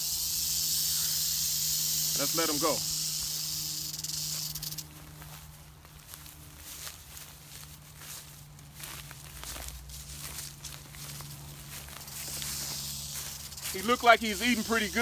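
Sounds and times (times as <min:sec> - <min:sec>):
rattlesnake tail rattle buzzing: 0:00.0 - 0:05.0, 0:11.0 - 0:15.0
rustling in dry leaves: 0:00.0 - 0:15.0
footsteps in dry leaves: 0:04.1 - 0:15.0.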